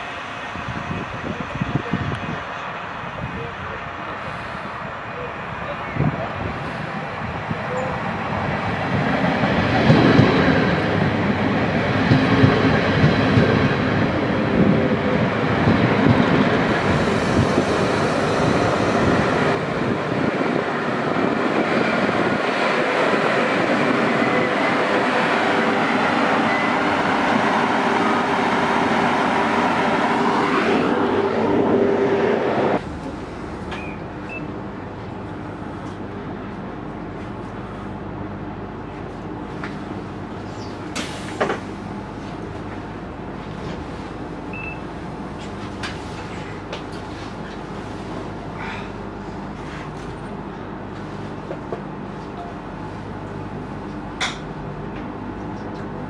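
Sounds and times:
diesel train engine and running gear: 0:00.0 - 0:56.0
hum inside train carriage: 0:00.0 - 0:56.0.

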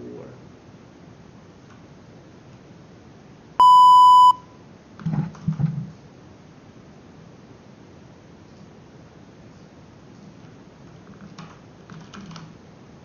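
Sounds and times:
loud electronic beep: 0:03.6 - 0:04.4.

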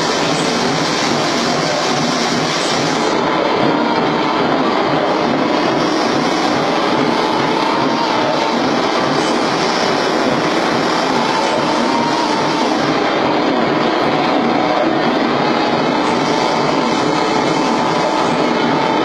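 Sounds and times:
harsh amplified noise: 0:00.0 - 0:19.0.

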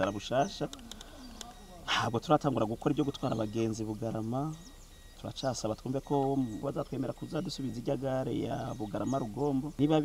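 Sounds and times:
man speaking: 0:00.0 - 0:00.8, 0:01.6 - 0:10.0
bird calling faintly: 0:00.0 - 0:10.0.

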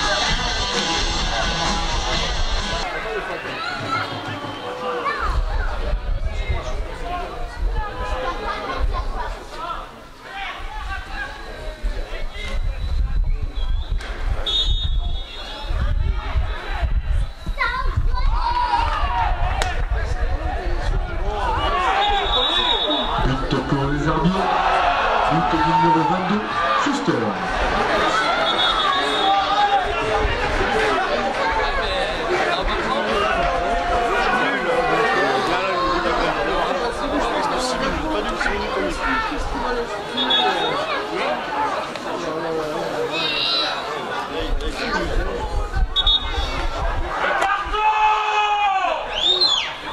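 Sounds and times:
voices of players or spectators: 0:00.0 - 0:49.9
referee's whistle blast: 0:13.6 - 0:15.6, 0:22.0 - 0:23.2, 0:28.4 - 0:29.4, 0:40.1 - 0:40.9, 0:46.0 - 0:46.4.

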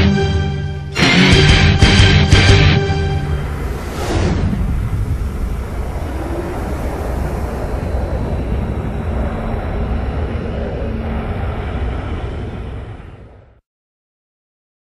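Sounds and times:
dense low rumbling: 0:01.0 - 0:13.6.

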